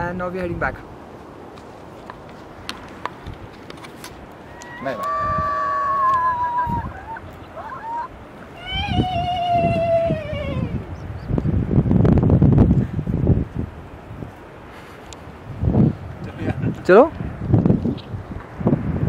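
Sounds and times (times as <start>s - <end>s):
person's drawn-out vocal calls: 4.5s - 10.9s.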